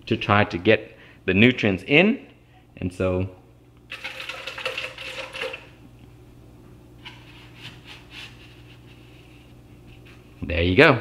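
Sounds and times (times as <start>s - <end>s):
plastic cups clattering and rustling: 3.9s - 5.7s.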